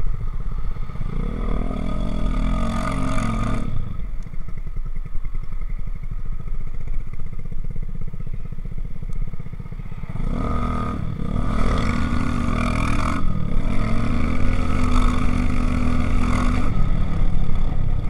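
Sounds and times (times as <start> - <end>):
motorcycle engine accelerating: 0.0 - 18.0.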